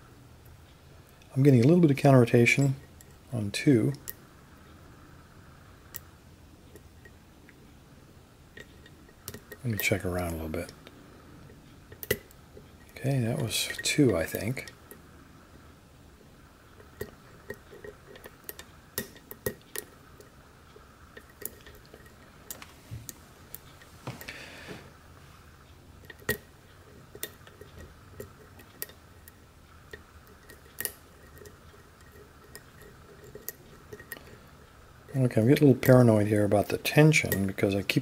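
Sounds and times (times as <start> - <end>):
faint steady hum: 0.0 - 38.0
lock picking metallic clicks: 11.9 - 12.9, 16.8 - 20.3, 26.0 - 34.4.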